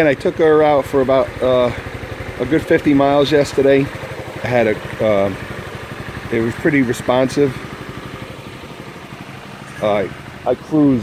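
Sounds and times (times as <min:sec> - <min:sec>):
scooter engine idling: 0:00.0 - 0:11.0.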